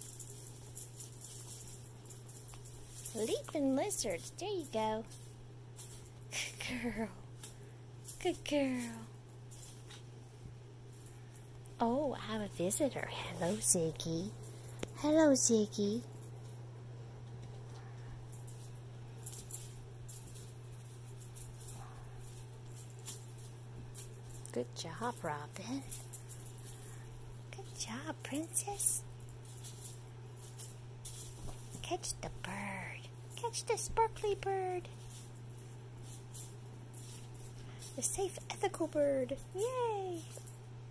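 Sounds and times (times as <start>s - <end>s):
tinsel toy rattling and rustling: 0.0s - 10.1s, 10.9s - 16.8s, 17.4s - 40.9s
steady low hum: 0.0s - 40.9s.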